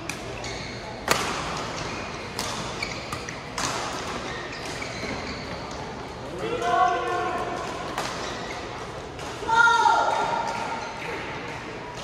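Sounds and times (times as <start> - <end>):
rackets hitting shuttlecock: 0.0 - 5.3, 7.1 - 9.5.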